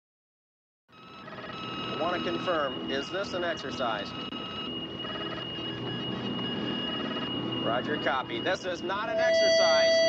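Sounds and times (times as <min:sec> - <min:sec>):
high-pitched electronic tone: 0:01.0 - 0:10.0.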